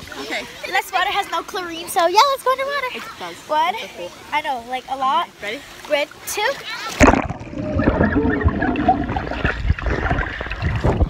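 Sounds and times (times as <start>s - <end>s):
underwater bubbling and gurgling: 7.0s - 11.0s.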